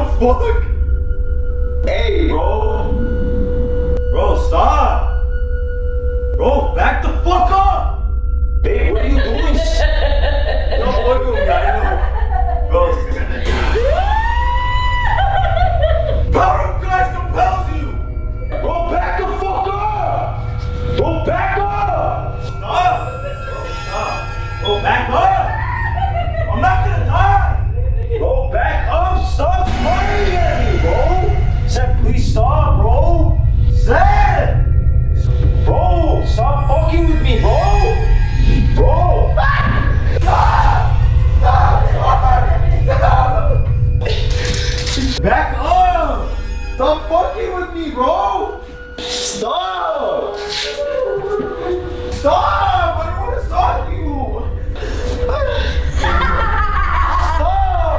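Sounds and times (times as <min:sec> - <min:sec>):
low hum: 0:00.0 - 0:49.4
music with deep bass: 0:00.0 - 0:50.2, 0:50.8 - 0:57.9
people shouting and yelling: 0:12.7 - 0:20.4, 0:21.0 - 0:31.4, 0:38.8 - 0:47.2, 0:49.5 - 0:54.4, 0:55.2 - 0:57.9
siren-like wail: 0:13.4 - 0:28.0, 0:50.0 - 0:53.9.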